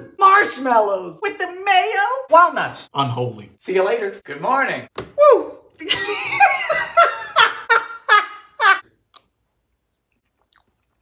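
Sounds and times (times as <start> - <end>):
man laughing: 5.8 - 8.8.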